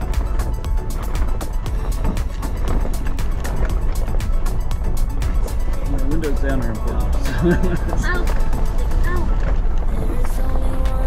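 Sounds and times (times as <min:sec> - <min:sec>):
engine and tyre rumble on gravel: 0:00.0 - 0:11.0
music with steady beat: 0:00.0 - 0:11.0.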